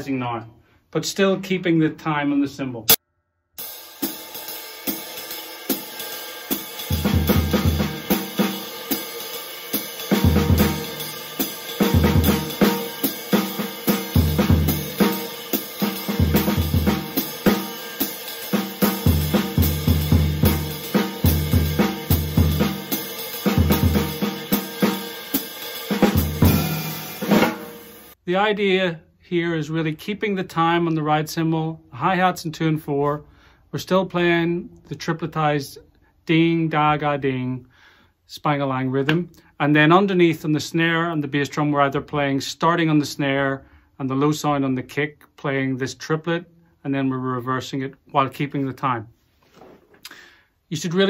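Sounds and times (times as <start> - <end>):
hi-hat closing: 3.6 - 28.2
ride cymbal swing time: 3.6 - 28.2
snare and bass drum phrases: 3.6 - 28.2.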